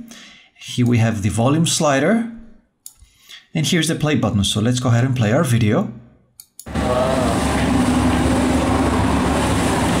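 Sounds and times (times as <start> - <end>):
motorboat engine hum: 6.7 - 10.0
water noise: 6.7 - 10.0.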